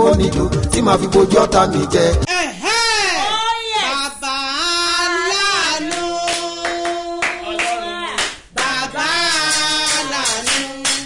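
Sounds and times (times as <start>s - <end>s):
woman singing: 4.8s - 11.0s
hand clapping in time: 5.9s - 11.0s.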